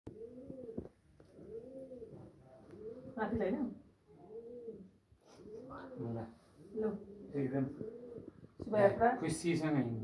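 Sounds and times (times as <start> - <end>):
pigeon cooing: 0.1 - 8.9.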